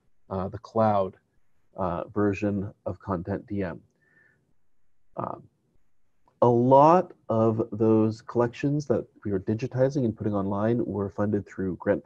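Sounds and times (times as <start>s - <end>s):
man saying uh: 0.3s - 1.1s, 1.8s - 3.8s, 5.2s - 5.4s, 6.4s - 12.0s.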